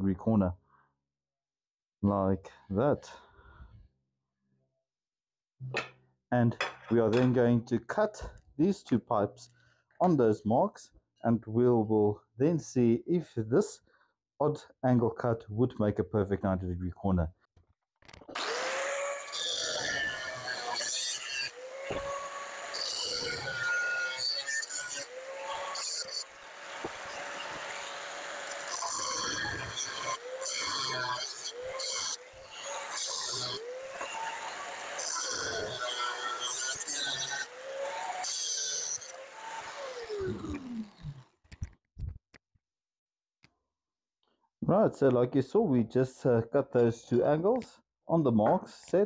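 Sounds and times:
grinder motor whine: 0:18.3 - 0:41.4
grinder disc shrieking through metal: 0:18.4 - 0:41.3.

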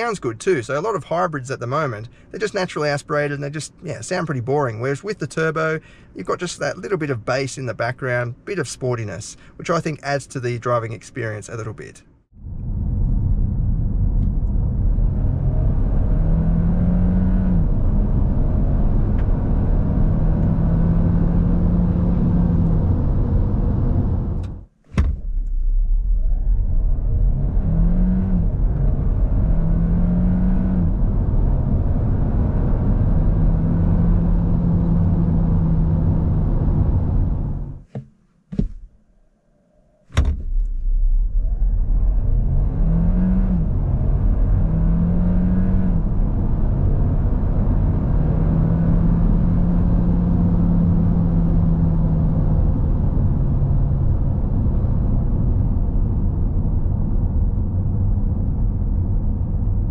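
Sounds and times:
car engine accelerating: 0:12.4 - 0:24.6, 0:25.3 - 0:37.8, 0:40.6 - 0:59.9.

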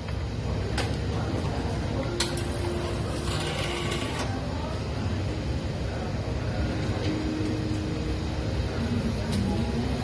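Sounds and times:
mechanical hum of equipment: 0:00.0 - 0:10.0.

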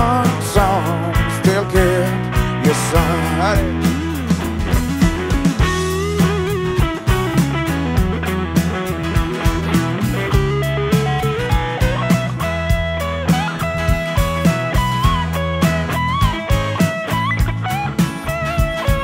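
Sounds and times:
drums: 0:00.0 - 0:19.0
electric guitar lead line: 0:00.0 - 0:19.0
strummed acoustic guitar: 0:00.0 - 0:19.0.

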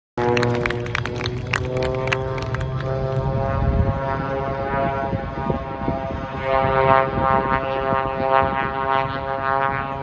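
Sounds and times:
propeller plane engine droning: 0:00.2 - 0:10.0.

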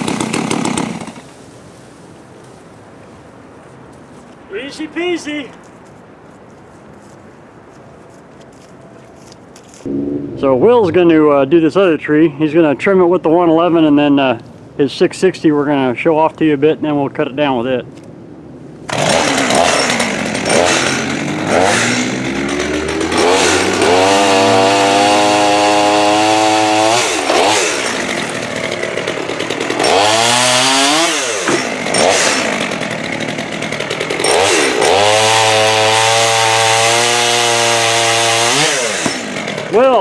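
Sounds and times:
chainsaw cutting wood: 0:00.0 - 0:01.3, 0:18.9 - 0:40.0
chainsaw revving and idling: 0:00.0 - 0:01.3, 0:18.9 - 0:40.0.

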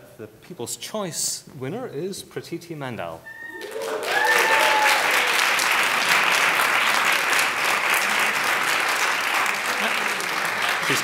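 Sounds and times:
audience clapping: 0:03.5 - 0:11.0.

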